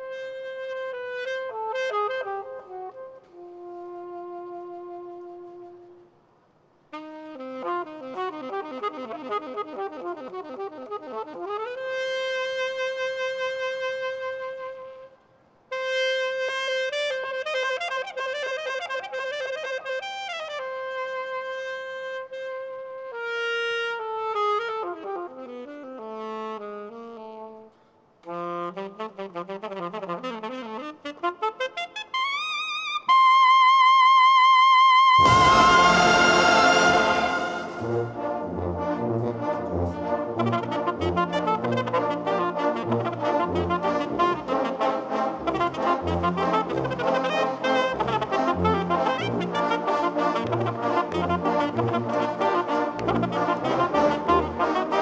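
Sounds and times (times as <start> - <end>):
alto saxophone solo: 0.0 - 6.3, 6.9 - 55.0.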